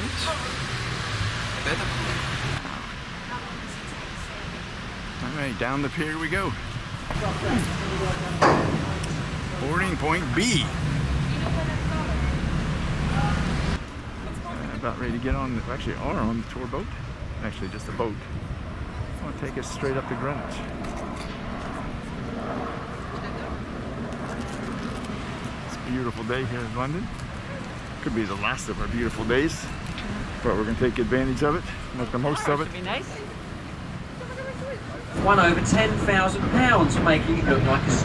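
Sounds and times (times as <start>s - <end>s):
boat engine rumble: 0.0s - 38.0s
faint passenger voices: 16.8s - 38.0s.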